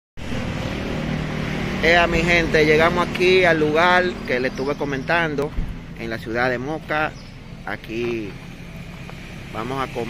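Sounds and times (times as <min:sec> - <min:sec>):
man talking: 0:01.7 - 0:08.5, 0:09.5 - 0:10.0.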